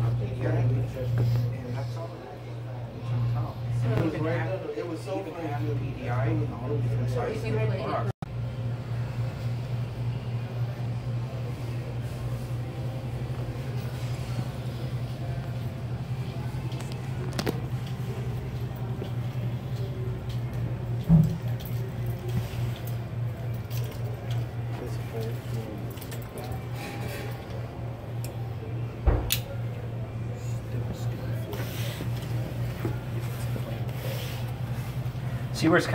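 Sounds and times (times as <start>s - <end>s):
low machine hum: 0.0s - 35.9s.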